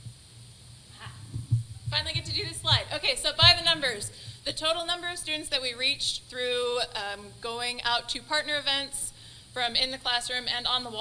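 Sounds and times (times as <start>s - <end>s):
soft low thumps: 1.0s - 4.9s
woman speaking: 1.9s - 11.0s.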